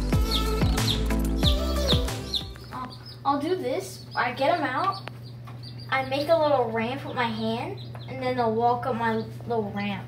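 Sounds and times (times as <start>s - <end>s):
chicks peeping: 0.0s - 10.0s
steady low hum: 0.0s - 10.0s
child's voice: 2.8s - 5.0s, 5.9s - 10.0s.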